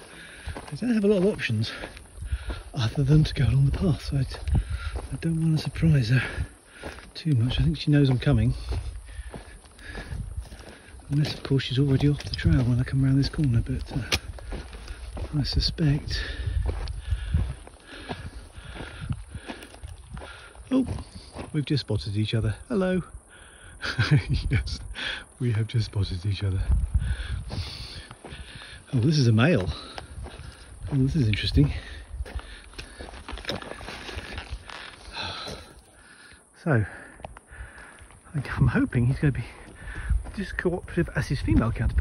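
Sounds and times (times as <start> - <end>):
person breathing: 0.0 - 0.7, 1.7 - 2.8, 4.3 - 5.2, 6.2 - 7.1, 8.5 - 11.1, 16.0 - 21.4, 23.2 - 23.8, 24.9 - 25.4, 26.9 - 28.9, 31.6 - 38.2, 39.4 - 40.3
footsteps crunching on gravel: 0.0 - 22.6, 25.6 - 36.0, 36.8 - 42.0.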